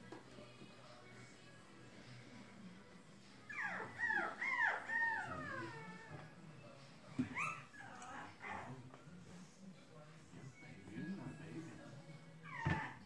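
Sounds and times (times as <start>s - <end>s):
puppy whimpering: 3.5s - 6.2s, 7.2s - 8.7s, 12.4s - 13.0s.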